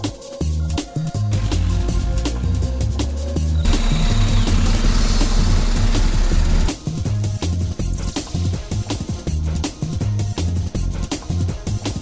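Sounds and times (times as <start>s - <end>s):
electronic music with fast beat: 0.0s - 12.0s.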